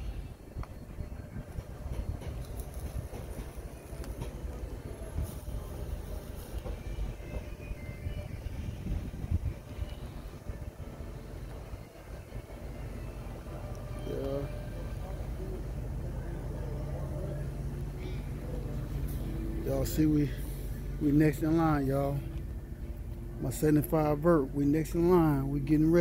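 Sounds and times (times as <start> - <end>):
low uneven rumble: 0.0 - 26.0.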